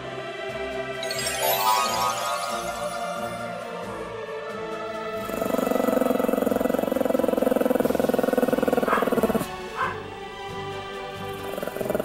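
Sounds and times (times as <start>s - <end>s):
dog growling: 5.2s - 10.0s, 11.3s - 12.0s.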